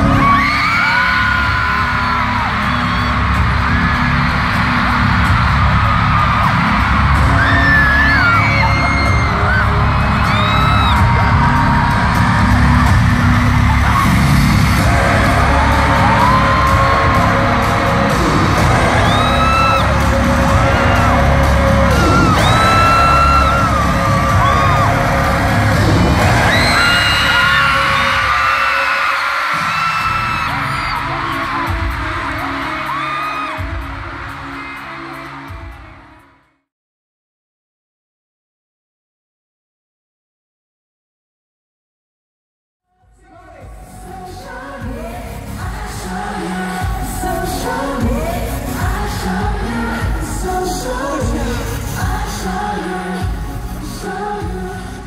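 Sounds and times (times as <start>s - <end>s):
fans screaming: 0.0s - 35.9s
loud pop music with bass beat: 0.0s - 36.5s, 43.1s - 55.0s.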